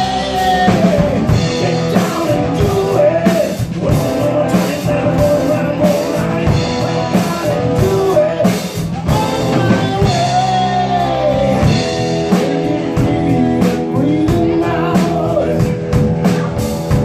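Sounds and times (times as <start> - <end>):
drum kit beat: 0.0 - 17.0
electric and acoustic guitars: 0.0 - 17.0
person singing: 0.0 - 17.0
rock band playing: 0.0 - 17.0.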